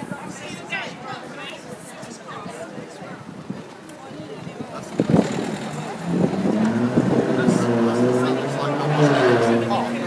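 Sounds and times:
faint background voices: 0.0 - 10.0
engine humming: 4.9 - 10.0.

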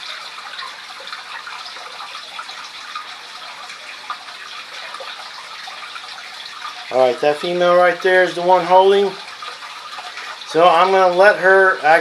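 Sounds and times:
aquarium water trickling: 0.0 - 12.0.

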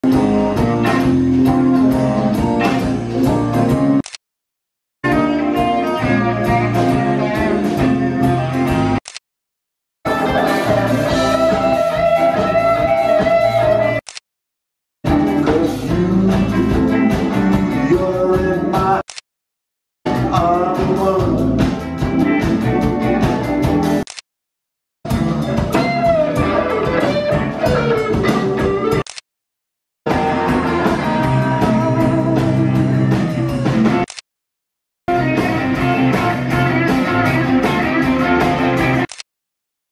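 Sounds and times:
live blues band playing: 0.0 - 4.0, 5.0 - 9.0, 10.1 - 14.0, 15.1 - 19.0, 20.1 - 24.0, 25.1 - 29.0, 30.1 - 34.1, 35.1 - 39.1.

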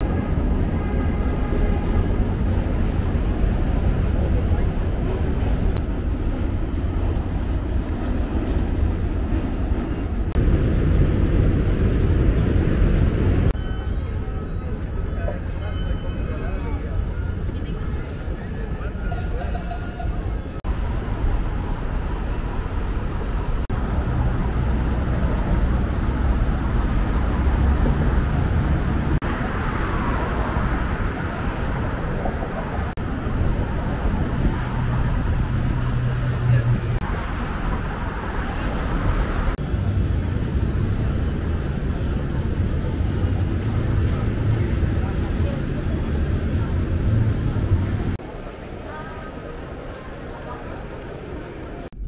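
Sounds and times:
low rumble of road vehicles: 0.0 - 52.0
people talking: 4.1 - 5.8, 13.6 - 20.3, 39.8 - 52.0.

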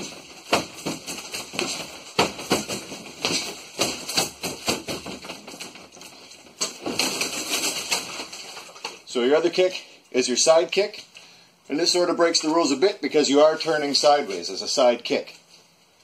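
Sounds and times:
kicks thudding on punching dummy: 0.0 - 5.9.

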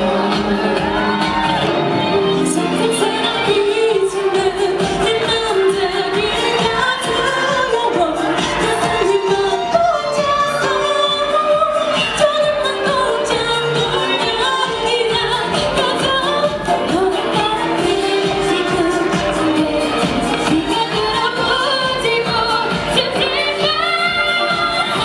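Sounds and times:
pop song with sung vocals: 0.0 - 25.0.

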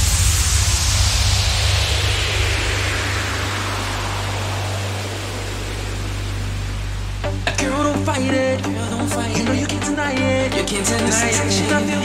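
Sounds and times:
held low bass tone: 0.0 - 12.0
white-noise sweep falling in pitch: 0.0 - 12.0.

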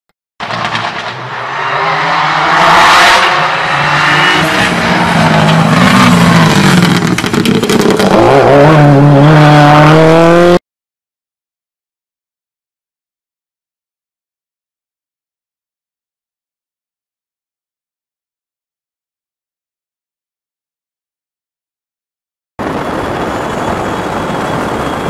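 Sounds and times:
racing car engine revving: 0.4 - 10.6.

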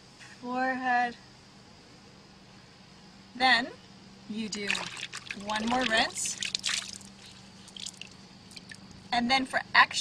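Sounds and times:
wet cloth squelching: 4.5 - 8.8
water dripping: 4.5 - 9.0.

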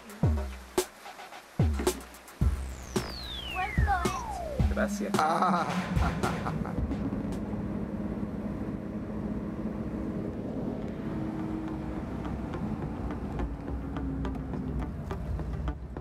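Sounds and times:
road noise: 0.0 - 16.0
car engine: 5.5 - 16.0.

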